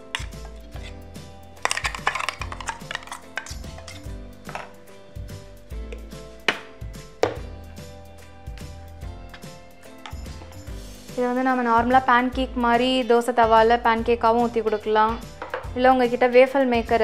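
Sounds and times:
spoon scraping batter from vessel: 0:00.1 - 0:01.0
spoon clinking on metal rims: 0:01.6 - 0:04.1.

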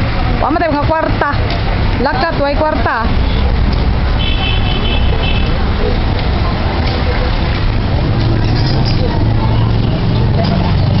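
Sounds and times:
people chattering: 0:00.0 - 0:11.0
vehicle engine humming: 0:00.0 - 0:11.0.

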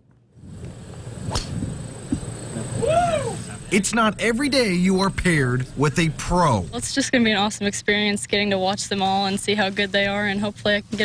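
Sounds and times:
golf club striking ball: 0:01.3 - 0:02.3
crowd murmur: 0:02.5 - 0:03.9.

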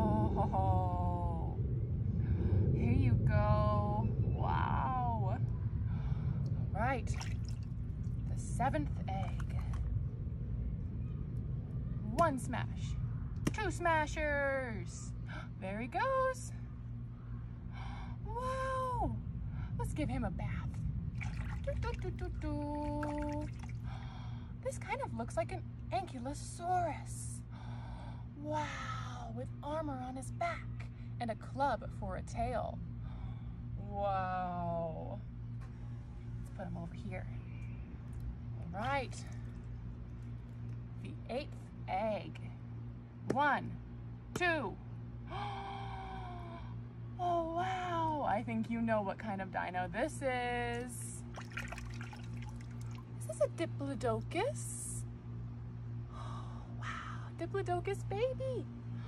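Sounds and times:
steady low hum: 0:00.0 - 0:59.0
faint breath: 0:05.7 - 0:06.7, 0:23.8 - 0:24.6, 0:27.5 - 0:28.4, 0:33.0 - 0:33.8.

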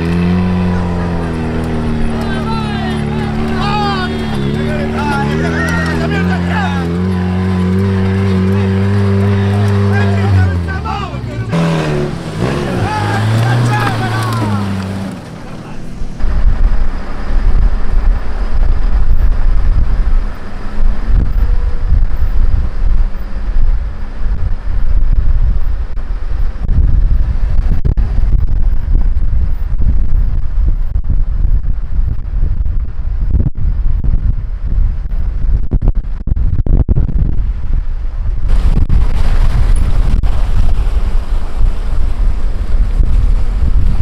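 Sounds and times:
tyres on gravel: 0:00.0 - 0:16.3
vehicle drone: 0:00.0 - 0:36.3
wind buffeting microphone: 0:00.0 - 0:44.0.

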